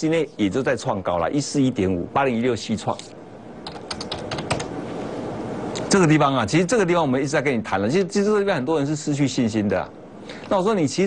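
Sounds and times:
keyboard typing: 3.6s - 4.7s.

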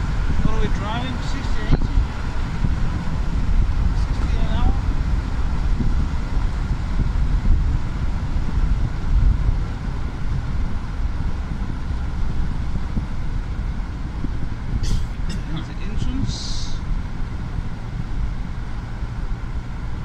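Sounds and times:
car driving rumble: 0.0s - 20.0s.

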